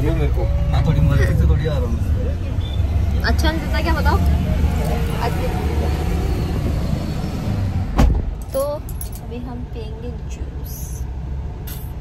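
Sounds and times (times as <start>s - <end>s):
sharp thump: 7.9s - 8.4s.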